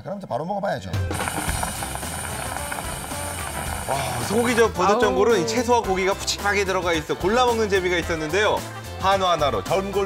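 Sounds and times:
background music: 0.0 - 10.0
stew boiling and bubbling: 1.1 - 7.0.

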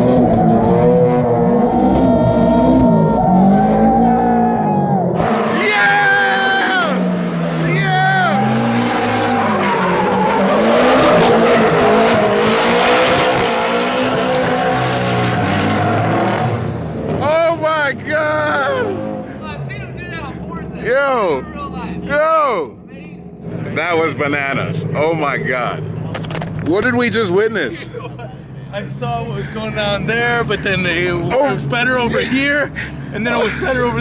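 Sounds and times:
car engines revving hard: 0.0 - 34.0.

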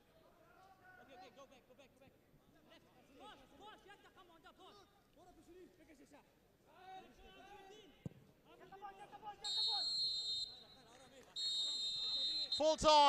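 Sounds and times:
referee's whistle blast: 9.4 - 10.8, 11.4 - 13.0.

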